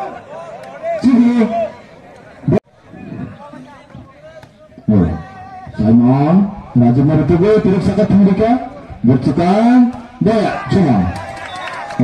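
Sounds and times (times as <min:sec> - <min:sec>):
murmuring crowd: 0:00.0 - 0:12.0.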